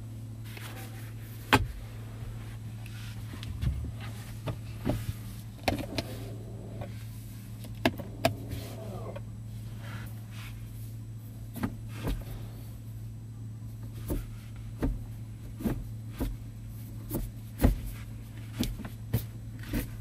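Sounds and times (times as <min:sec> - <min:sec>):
low cabin hum: 0:00.0 - 0:20.0.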